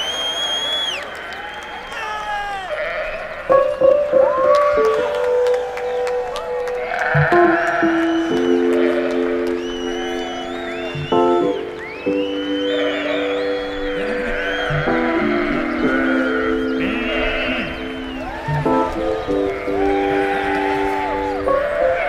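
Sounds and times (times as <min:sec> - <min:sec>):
sheep bleating: 0:02.7 - 0:03.8, 0:06.8 - 0:09.3, 0:12.7 - 0:18.2
keyboard held notes: 0:03.4 - 0:22.0.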